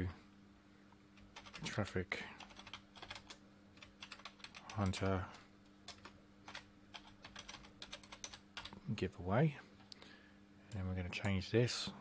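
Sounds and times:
faint steady hum: 0.0 - 12.0
computer keyboard typing: 1.2 - 1.7, 2.4 - 8.8.

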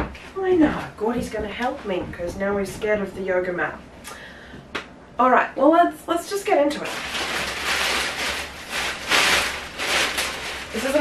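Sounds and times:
plastic bag rustling: 6.7 - 11.0.

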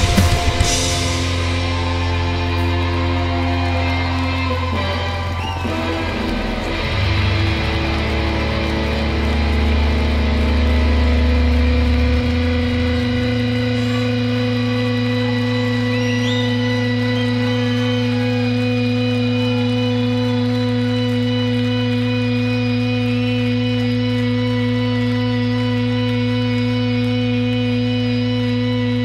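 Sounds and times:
rock band droning chord: 0.0 - 29.0.

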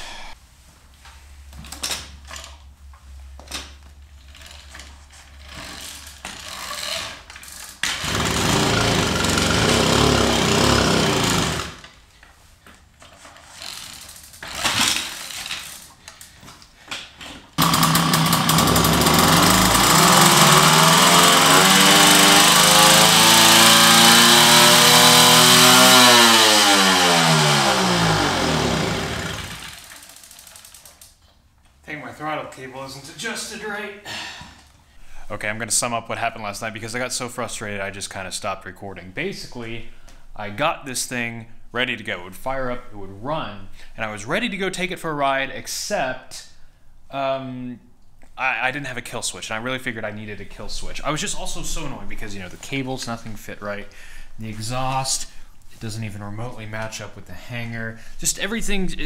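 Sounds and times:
moped two-stroke engine running: 8.1 - 11.8, 17.6 - 30.9.

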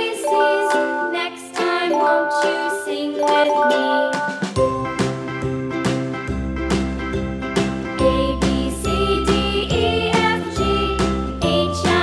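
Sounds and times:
children's song with steady beat: 0.0 - 6.1, 7.9 - 12.0.

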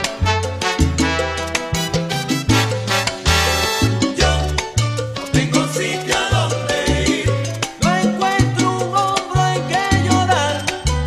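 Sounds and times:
salsa band instrumental: 0.0 - 11.0.

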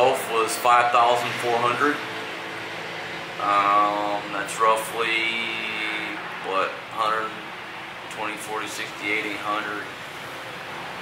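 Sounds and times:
man's drawn-out hesitation sound: 0.0 - 2.1, 3.4 - 7.5, 8.1 - 10.0.

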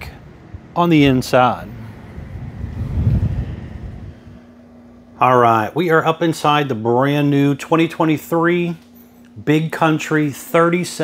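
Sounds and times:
faint steady hum: 0.0 - 11.0
wind buffeting microphone: 1.7 - 4.6.

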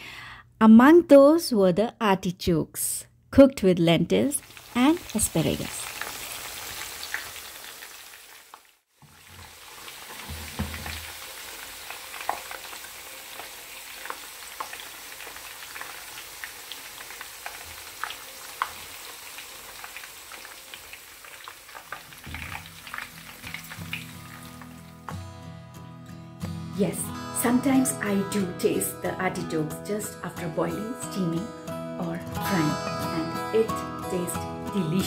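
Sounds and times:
food sizzling in hot oil: 4.4 - 25.1.

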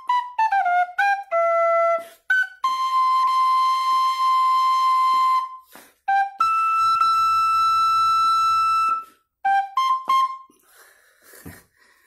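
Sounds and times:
whistle flute long note: 0.0 - 10.6.

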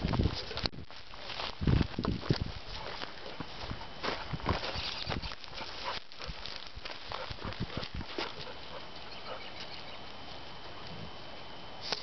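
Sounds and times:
dry grass crackling: 0.0 - 12.0.

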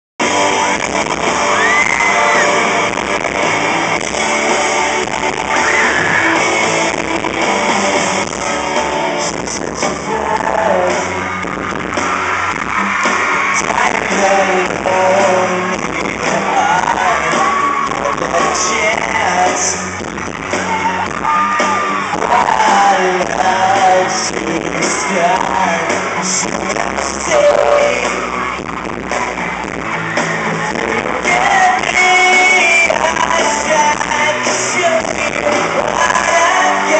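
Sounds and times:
fans yelling: 0.2 - 36.9
live pop-rock band: 0.2 - 36.9
man singing: 8.2 - 11.4, 13.5 - 28.4, 30.7 - 36.9.

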